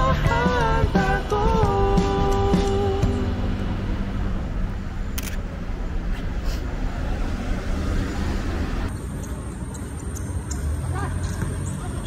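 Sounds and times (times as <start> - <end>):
cars driving past: 0.3 - 12.0.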